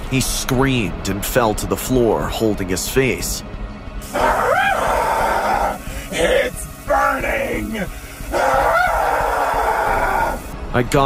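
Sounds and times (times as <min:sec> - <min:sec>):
man screaming in pain: 0:04.0 - 0:10.5.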